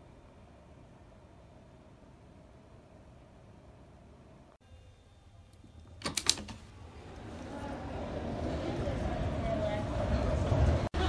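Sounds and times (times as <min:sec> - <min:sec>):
city street noise: 0:06.0 - 0:11.0.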